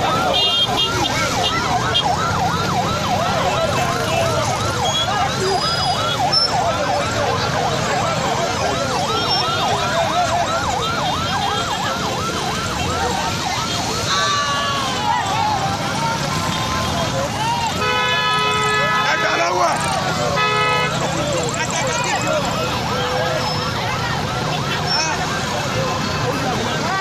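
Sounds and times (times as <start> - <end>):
electronic yelp siren: 0.0 - 27.0
street noise hubbub: 0.0 - 27.0.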